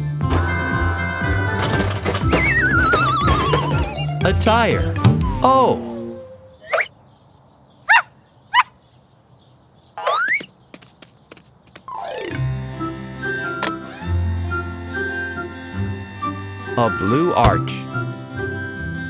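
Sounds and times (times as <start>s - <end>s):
background music: 0.0s - 6.7s, 11.9s - 19.0s.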